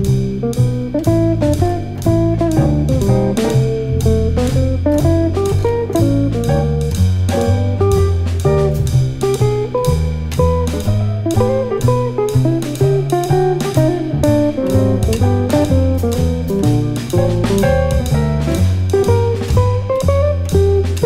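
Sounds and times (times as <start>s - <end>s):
guitar lead line: 0.0s - 21.0s
jazz piano: 0.0s - 21.0s
walking double bass: 0.0s - 21.0s.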